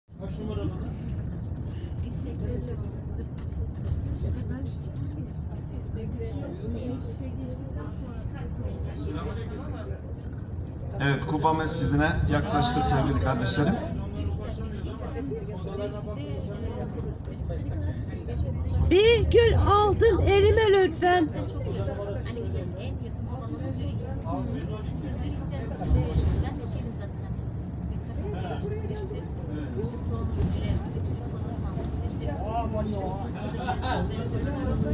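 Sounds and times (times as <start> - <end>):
people talking indistinctly: 0.2 - 34.9.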